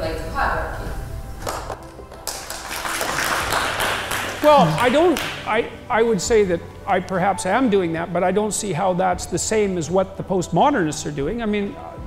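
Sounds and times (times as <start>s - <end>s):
music: 0.0s - 12.0s
audience applause: 2.1s - 5.5s.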